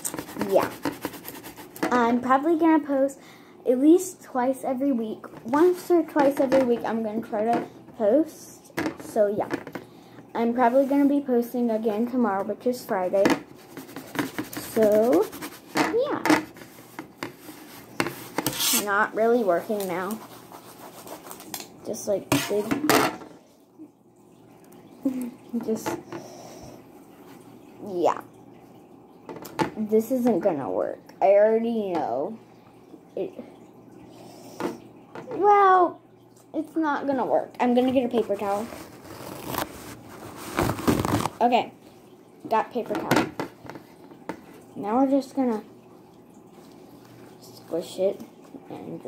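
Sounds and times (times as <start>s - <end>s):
paper scraping paper plate: 0.0s - 1.9s, 13.6s - 18.9s, 19.6s - 21.6s, 38.2s - 41.4s
paper towel tearing off roll: 38.6s - 41.4s.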